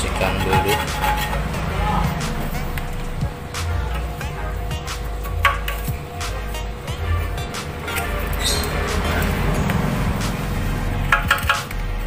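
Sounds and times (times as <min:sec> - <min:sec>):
metal scraper scraping glue: 0:00.0 - 0:02.4
background music: 0:00.0 - 0:12.0.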